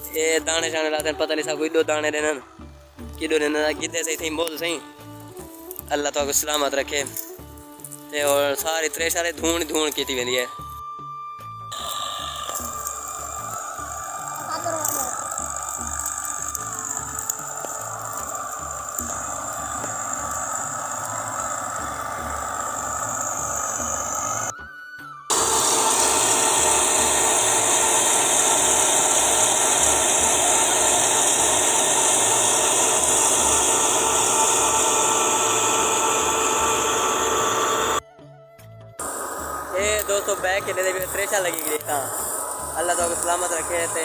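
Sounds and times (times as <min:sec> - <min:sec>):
threshing machine running: 0:03.0 - 0:10.5, 0:11.7 - 0:24.5, 0:25.3 - 0:38.0, 0:39.0 - 0:44.0.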